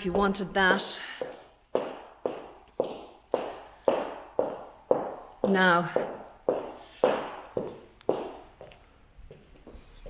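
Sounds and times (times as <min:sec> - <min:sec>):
footsteps on wooden floor: 0:00.0 - 0:10.0.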